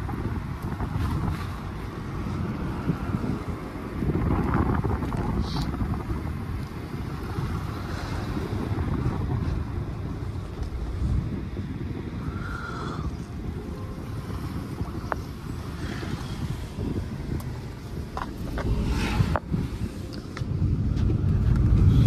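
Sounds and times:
road and engine rumble: 0:00.0 - 0:22.0
wind rushing over microphone: 0:00.0 - 0:22.0.

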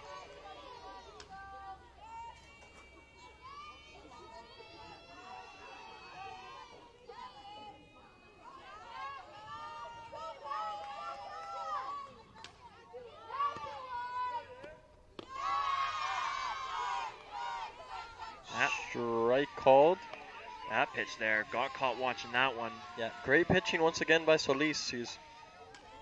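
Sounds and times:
players and spectators calling out: 0:00.0 - 0:26.0
commentary: 0:18.4 - 0:20.0, 0:20.6 - 0:25.2.

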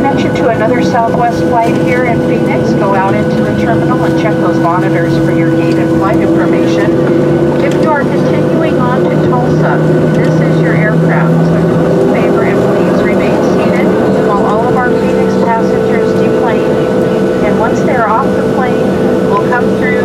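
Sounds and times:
airplane cabin engine drone: 0:00.0 - 0:20.0
passengers chattering: 0:00.0 - 0:20.0.

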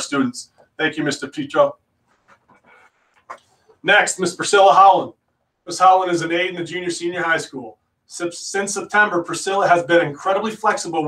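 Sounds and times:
man speaking: 0:00.0 - 0:01.8, 0:03.8 - 0:11.0.

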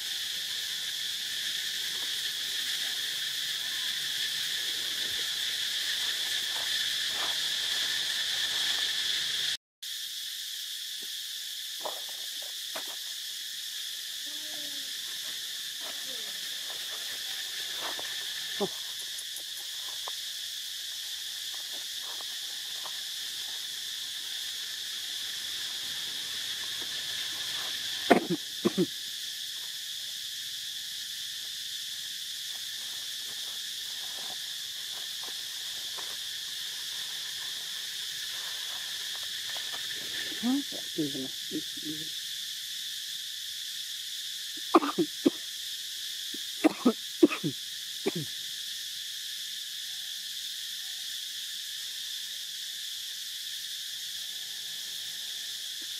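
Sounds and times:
high-pitched insect chorus: 0:00.0 - 0:55.9.

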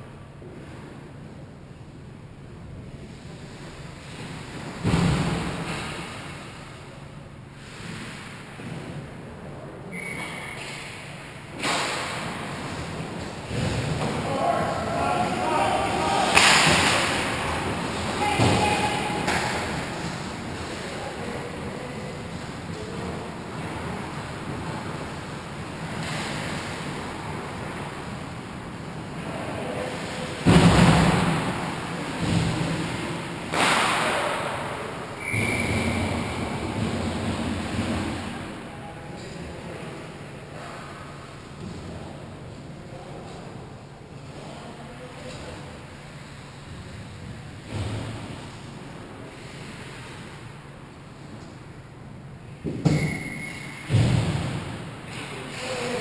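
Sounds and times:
low rink noise: 0:00.0 - 0:56.0.

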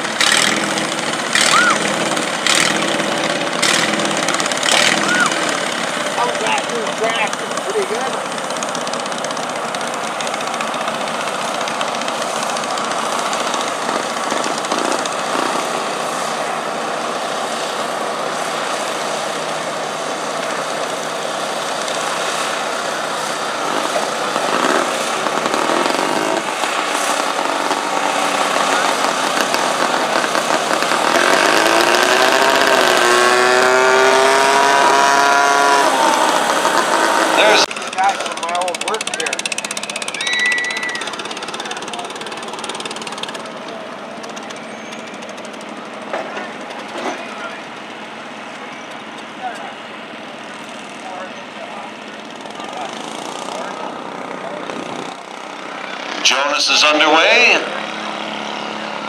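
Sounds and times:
garden tractor engine running: 0:00.0 - 0:17.4, 0:37.4 - 0:56.8.

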